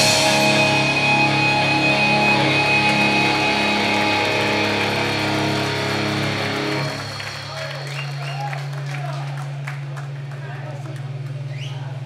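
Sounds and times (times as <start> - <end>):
electric guitars sustained chord: 0.0 - 10.7.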